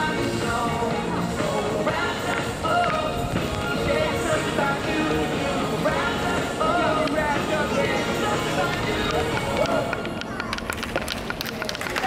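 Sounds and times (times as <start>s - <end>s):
music: 0.0s - 11.1s
people's voices: 0.0s - 12.0s.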